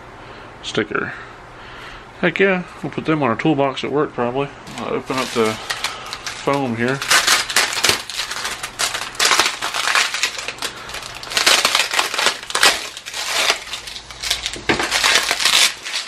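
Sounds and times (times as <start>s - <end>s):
foam packing wrap crinkling: 4.6s - 16.0s
utility knife slitting wrap: 5.1s - 16.0s.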